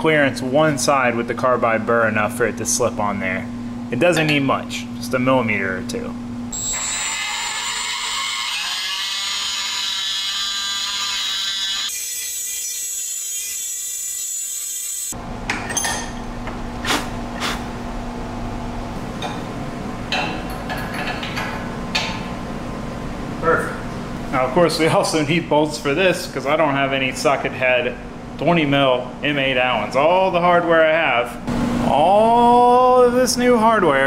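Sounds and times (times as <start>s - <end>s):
rotary tool high whine: 6.5s - 15.2s.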